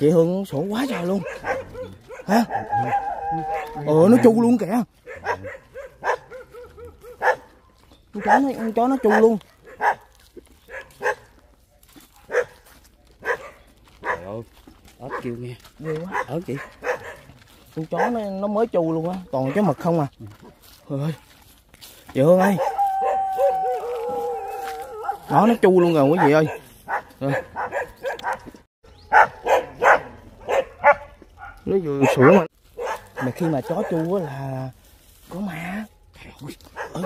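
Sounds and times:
dog barking: 0.7s - 11.4s, 12.1s - 12.6s, 13.2s - 14.4s, 15.0s - 18.4s, 19.2s - 19.8s, 22.4s - 34.5s, 36.7s - 37.0s.

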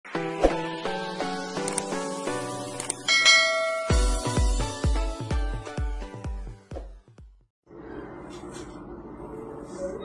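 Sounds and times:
light intro music: 0.1s - 6.7s
bright bell chime: 3.1s - 4.4s.

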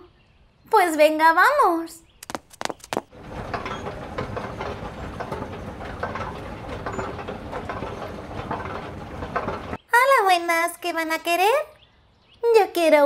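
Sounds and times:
light clicks and clatter: 2.2s - 9.8s.

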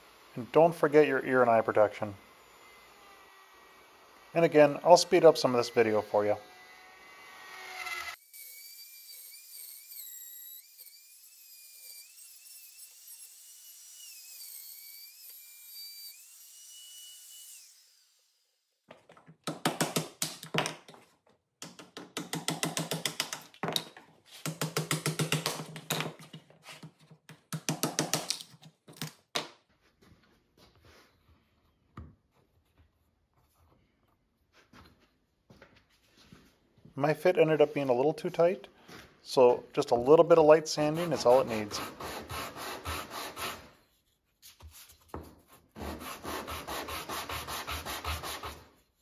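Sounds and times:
router motor whining: 2.2s - 4.9s, 5.5s - 18.5s.

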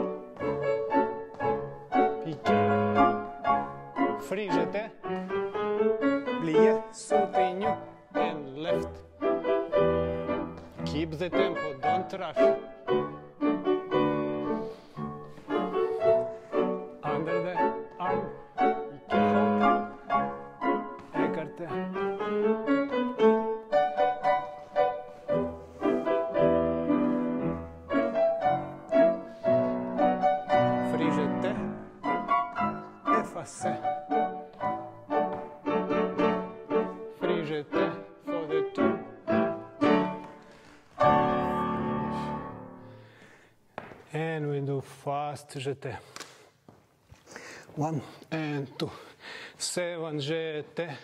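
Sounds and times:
classical piano music: 0.0s - 43.2s.

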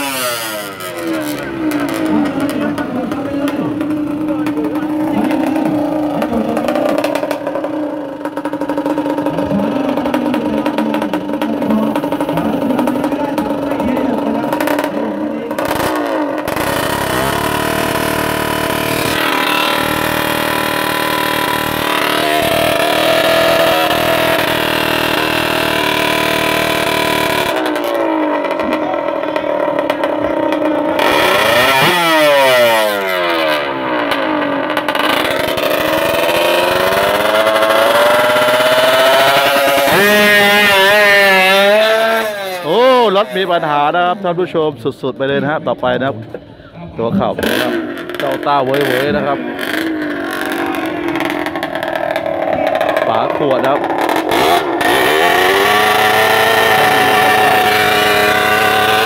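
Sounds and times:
two-stroke motorcycle engine revving: 0.0s - 46.4s, 47.0s - 59.0s.

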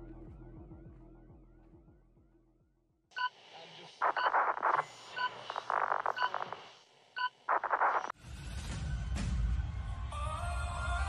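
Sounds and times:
crackling radio static: 3.2s - 8.2s
short electronic beeps: 4.0s - 6.6s.

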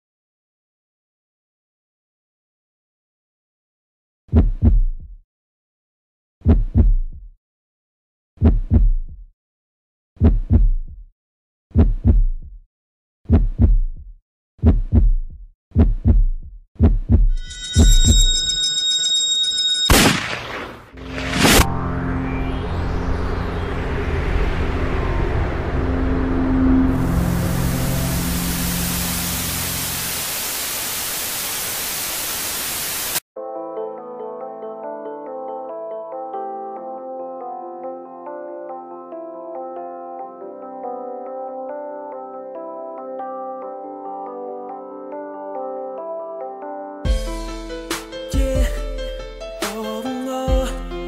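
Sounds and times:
heartbeat thumps: 4.3s - 5.2s, 6.4s - 7.3s, 8.4s - 9.3s, 10.2s - 11.1s, 11.8s - 12.6s, 13.3s - 18.2s
high ringing tone: 17.3s - 30.1s
sharp hits: 17.4s - 19.1s, 19.8s - 29.6s
low drone: 20.2s - 30.6s
static hiss: 27.5s - 33.2s.

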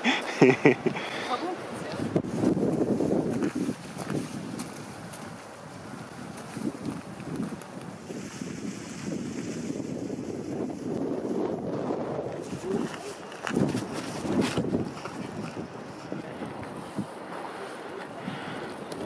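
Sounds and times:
wind buffeting microphone: 0.7s - 19.0s.

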